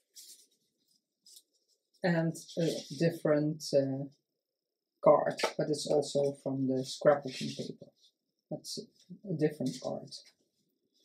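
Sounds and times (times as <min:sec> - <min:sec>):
paper cards rustling: 0:00.0 - 0:03.0, 0:09.6 - 0:10.6.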